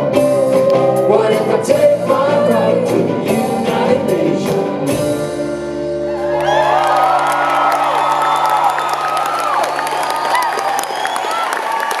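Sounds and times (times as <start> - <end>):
concert audience cheering and whooping: 5.8 - 12.0.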